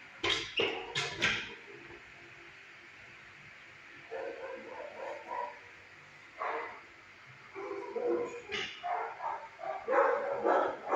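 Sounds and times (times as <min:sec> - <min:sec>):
dog barking: 0:04.1 - 0:05.7, 0:06.4 - 0:06.8, 0:07.6 - 0:10.9.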